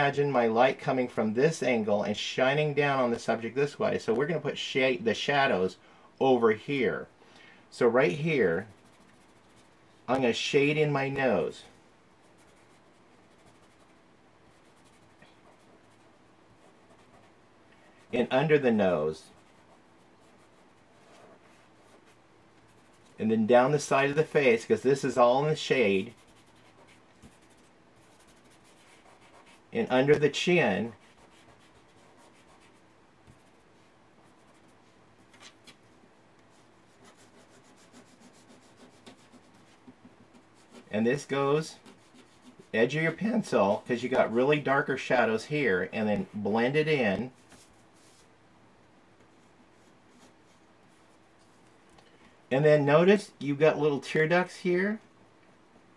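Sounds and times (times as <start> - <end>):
fingertip rubbing on paper: 8.6 - 9.8, 12.3 - 17.3, 25.8 - 29.7, 30.9 - 33.6, 36.9 - 40.9, 41.8 - 42.8.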